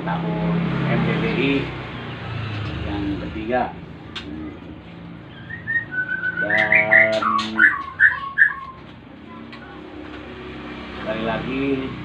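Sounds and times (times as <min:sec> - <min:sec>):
songbird singing whistled notes: 0:05.3 - 0:08.9.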